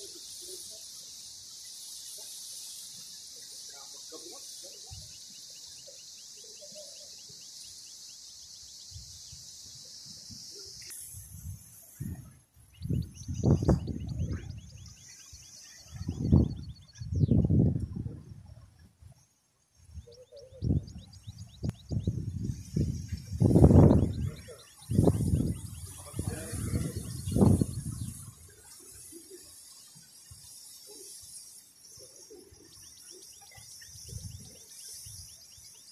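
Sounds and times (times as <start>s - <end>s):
wind buffeting microphone: 11.2s - 15.0s, 15.9s - 18.7s, 20.0s - 28.5s
bird trilling chirps: 12.7s - 17.4s, 20.0s - 28.4s.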